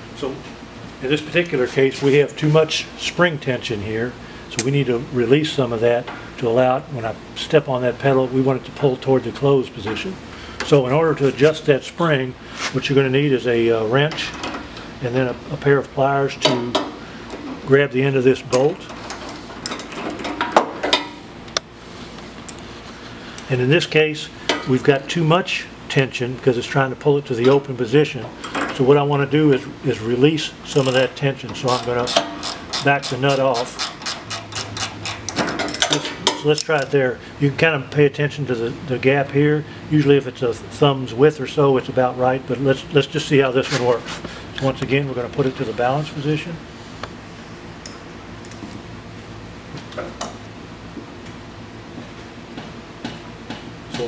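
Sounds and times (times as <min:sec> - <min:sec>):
wrench and pliers clinking on metal: 0:30.7 - 0:31.1, 0:31.7 - 0:36.9.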